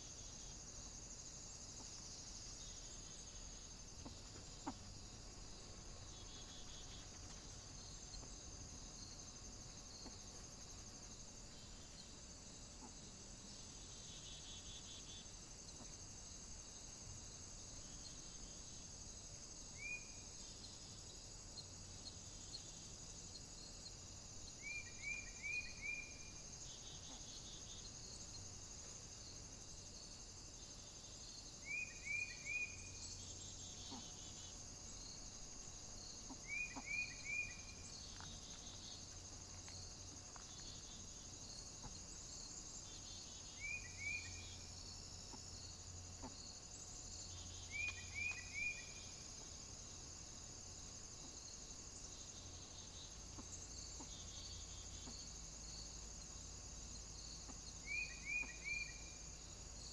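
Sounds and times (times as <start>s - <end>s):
high-pitched insect chorus: 0.0s - 59.9s.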